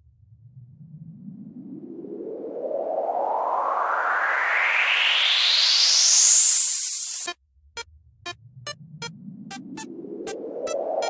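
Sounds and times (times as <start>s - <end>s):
synthesized noise sweep rising: 1.2s - 7.3s, 9.4s - 11.0s.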